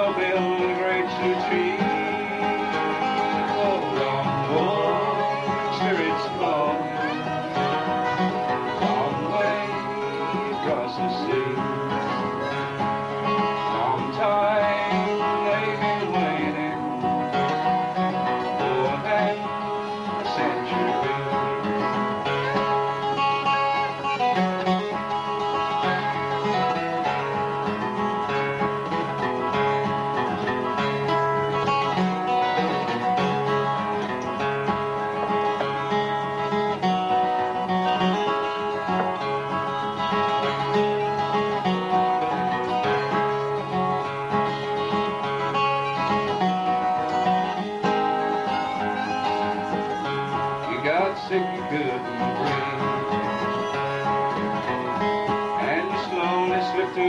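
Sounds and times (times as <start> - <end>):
acoustic guitar chords: 0.0 - 57.0.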